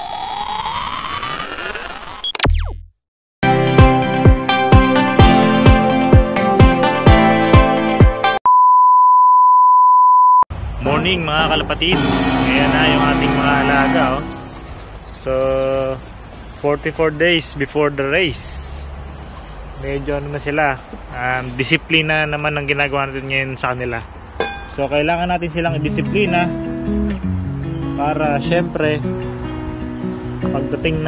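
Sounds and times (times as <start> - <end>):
synthetic rising tone: 0.0 - 2.8, 11.4 - 14.8
insects trilling: 10.5 - 31.0
held voiced tone: 10.8 - 14.6.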